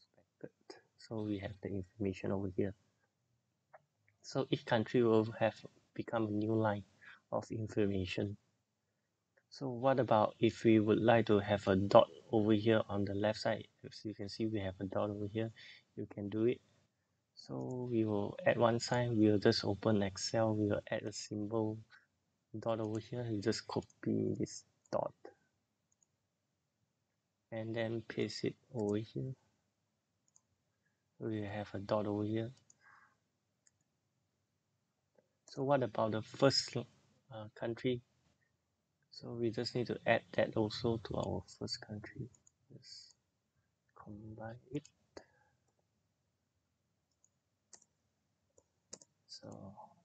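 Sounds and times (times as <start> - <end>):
person saying a word: 22.6 - 24.5.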